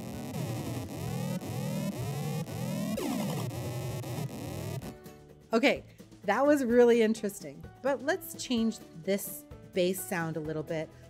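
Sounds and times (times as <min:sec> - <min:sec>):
square-wave sweeping sound effects: 0:00.0 - 0:04.9.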